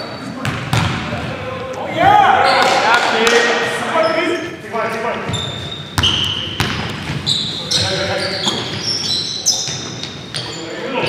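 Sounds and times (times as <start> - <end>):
sneaker squeaks: 0.0 - 0.9, 5.2 - 11.0
basketball bouncing on wooden floor: 0.4 - 1.0, 6.0 - 7.3
players calling out: 1.0 - 11.0.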